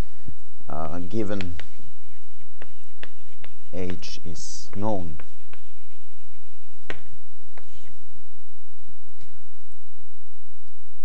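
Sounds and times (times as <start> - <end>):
chalk tapping and scratching: 0.9 - 8.0.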